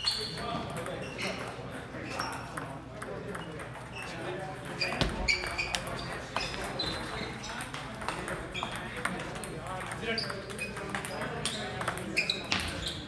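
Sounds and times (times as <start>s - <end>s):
table tennis balls clicking: 4.8s - 12.9s.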